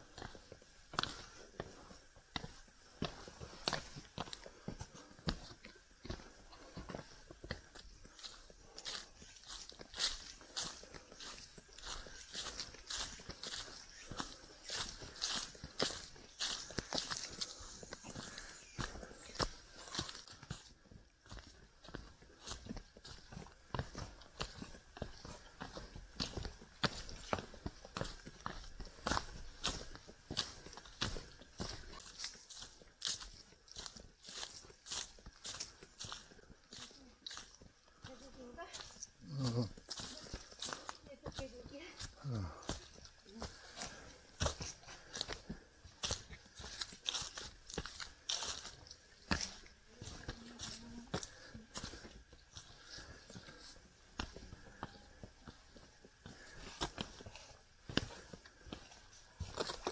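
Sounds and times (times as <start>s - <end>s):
footsteps on leaves and stones: 0.0s - 59.9s.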